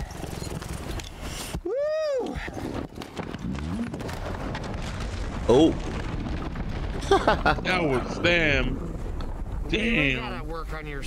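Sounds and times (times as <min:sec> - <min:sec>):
person whooping: 0:01.6 - 0:02.5.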